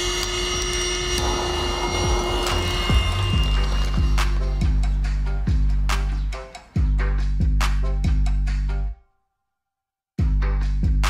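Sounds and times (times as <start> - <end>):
blower motor whine: 0.0 - 5.9
funk music with deep bass: 1.2 - 9.0, 10.2 - 11.0.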